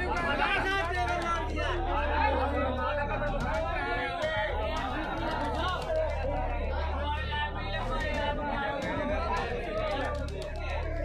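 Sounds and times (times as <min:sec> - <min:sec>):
babble of men's voices: 0:00.0 - 0:11.0.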